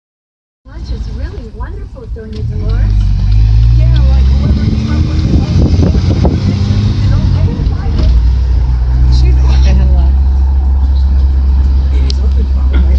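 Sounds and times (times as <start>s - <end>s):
road noise: 0.6s - 12.9s
car engine drone: 0.7s - 12.9s
voices: 0.7s - 12.9s.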